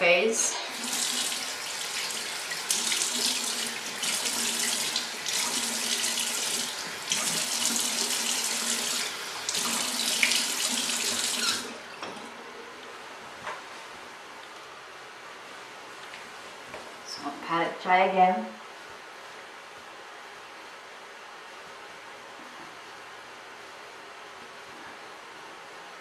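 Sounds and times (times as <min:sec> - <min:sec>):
sink tap running: 0:00.7 - 0:12.2.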